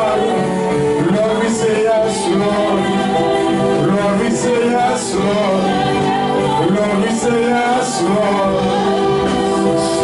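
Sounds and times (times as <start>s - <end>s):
church worship singing: 0.0s - 10.0s.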